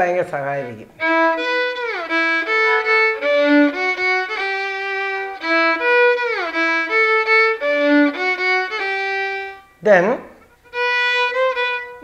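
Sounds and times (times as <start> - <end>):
solo violin melody: 0.0 - 12.0.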